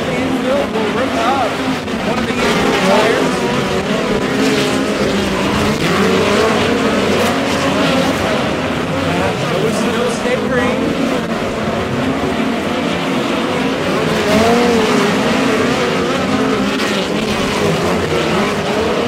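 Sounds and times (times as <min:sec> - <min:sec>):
race car engines running flat out: 0:00.0 - 0:19.0.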